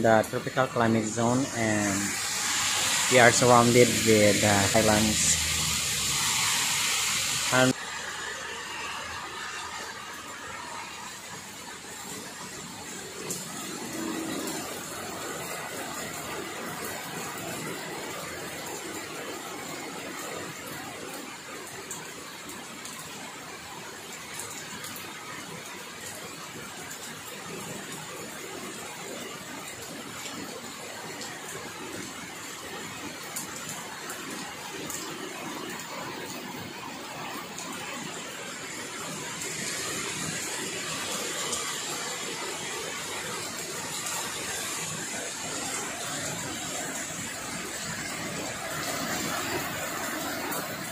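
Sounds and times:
heavy rain falling: 0.0 - 50.9.

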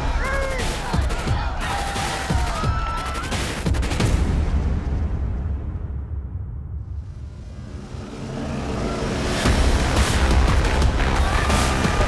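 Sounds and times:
rising whoosh: 6.8 - 10.3
background music with low notes: 6.8 - 12.0.

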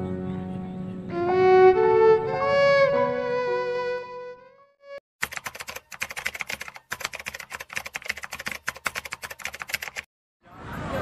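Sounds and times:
violin music: 1.1 - 5.0
keyboard typing clicks: 5.2 - 10.1.

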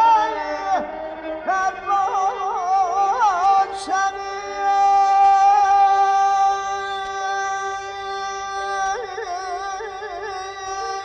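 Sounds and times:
voice singing held note with trills: 0.0 - 11.0.

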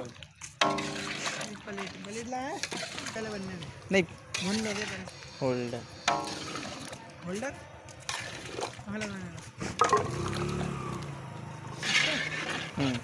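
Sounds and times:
metal ladle scraping iron pot: 0.6 - 3.6, 4.3 - 7.0, 8.0 - 8.9, 9.6 - 10.5, 11.7 - 13.0.

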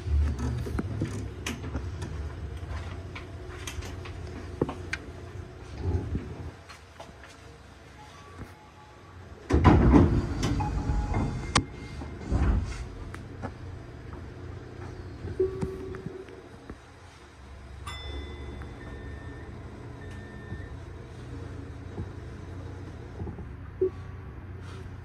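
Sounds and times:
electric train running rumble: 0.0 - 6.6, 9.2 - 24.8.

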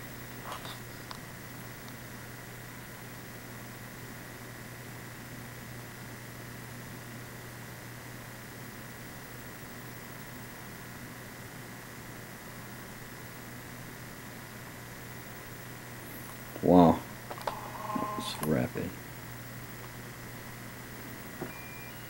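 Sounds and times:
faint high-pitched tone: 17.5 - 18.8.

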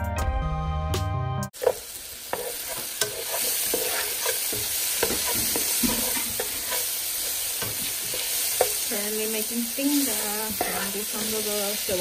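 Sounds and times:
spatula scraping and tapping pan: 1.6 - 9.0, 9.9 - 12.0
onions sizzling in a frying pan: 1.6 - 12.0.

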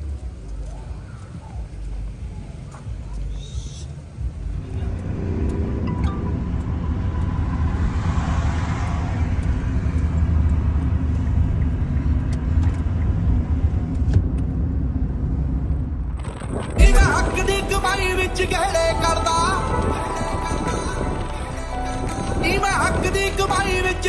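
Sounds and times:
car engine and road drone: 0.0 - 24.0.

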